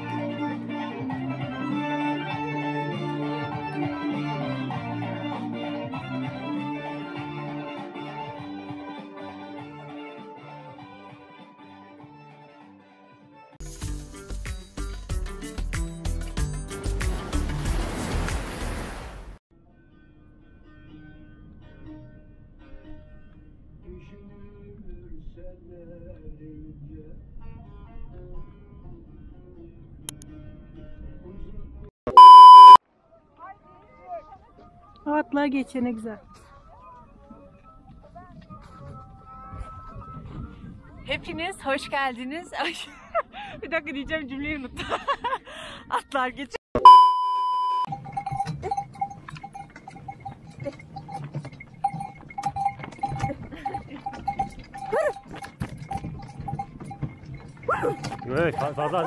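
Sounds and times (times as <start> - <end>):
high-pitched electronic beep: 32.1 - 32.8, 46.8 - 47.9
faint background music: 32.9 - 44.8
harness bell ringing: 46.9 - 59.0
sleigh clicking and rattling: 47.9 - 59.0.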